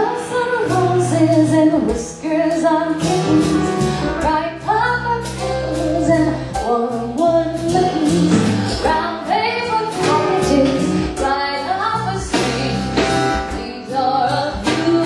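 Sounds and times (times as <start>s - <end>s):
bass notes: 0.0s - 15.0s
woman singing into microphone: 0.0s - 15.0s
band playing: 0.1s - 15.0s
drum hits: 9.9s - 11.5s, 12.2s - 13.8s.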